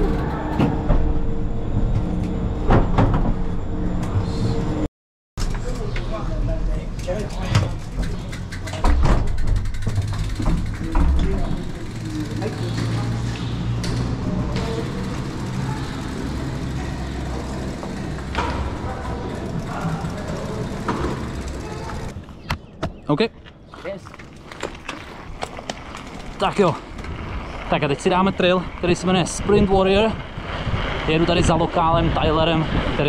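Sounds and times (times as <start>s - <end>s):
machinery humming: 0.0s - 4.9s, 7.8s - 22.5s
bikes knocking and clattering: 5.4s - 33.0s.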